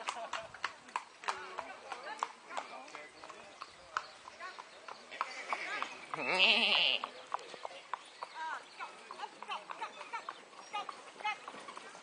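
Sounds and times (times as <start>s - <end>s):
hoofbeats of trotting ponies: 0.0s - 12.0s
people talking: 0.1s - 12.0s.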